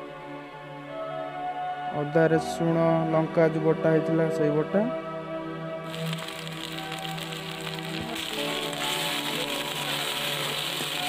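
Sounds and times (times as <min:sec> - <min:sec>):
onions sizzling in hot oil: 0:05.9 - 0:11.0.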